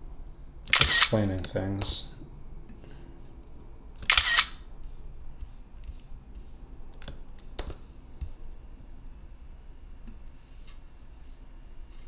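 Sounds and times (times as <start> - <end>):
camera shutter sound effect: 0.7 - 1.2, 4.0 - 4.6.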